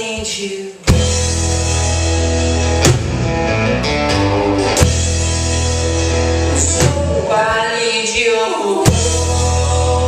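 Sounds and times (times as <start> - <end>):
rock band playing: 0.8 - 8.2, 8.8 - 10.0.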